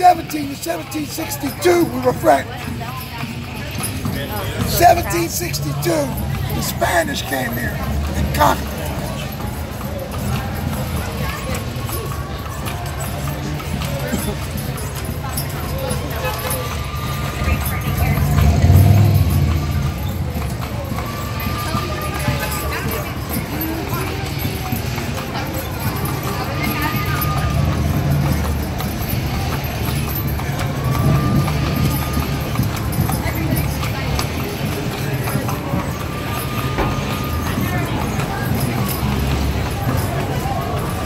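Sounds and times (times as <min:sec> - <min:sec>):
faint voices: 0:00.0 - 0:41.0
hooves clip-clopping on pavement: 0:00.0 - 0:41.0
murmur of street noise: 0:00.0 - 0:41.0
motor vehicle rumble: 0:07.8 - 0:41.0.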